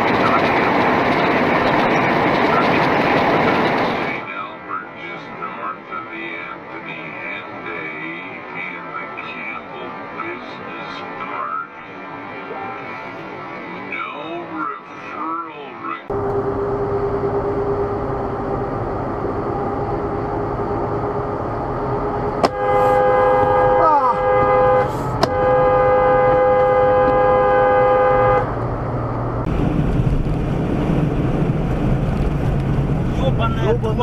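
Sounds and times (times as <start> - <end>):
road noise: 0.0 - 34.0
vehicle engine: 0.0 - 34.0
vehicle horn held: 22.4 - 28.5.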